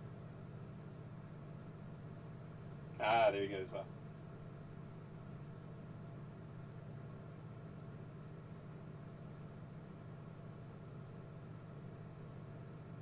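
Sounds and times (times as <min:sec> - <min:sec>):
faint low hum with hiss: 0:00.0 - 0:13.0.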